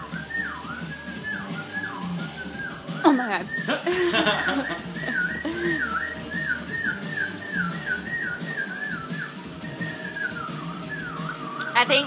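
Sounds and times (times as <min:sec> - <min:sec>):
dog whining: 0:04.5 - 0:06.1.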